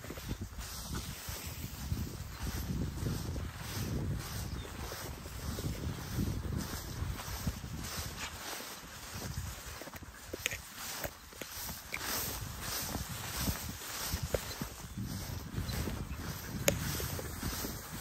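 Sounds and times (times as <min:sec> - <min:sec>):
footsteps through tall grass: 0:00.0 - 0:18.0
wind rumble on microphone: 0:00.0 - 0:18.0.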